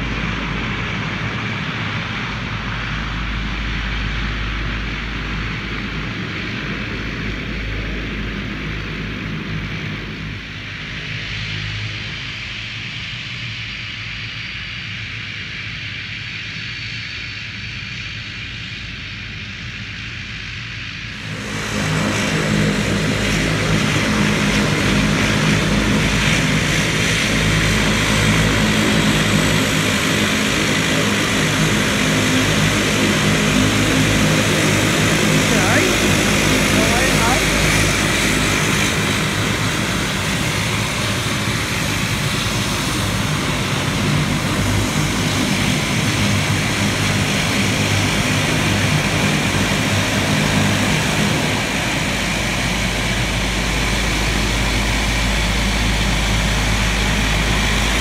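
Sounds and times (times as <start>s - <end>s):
propeller engines droning: 0.0s - 58.0s
deep rumble: 50.8s - 58.0s.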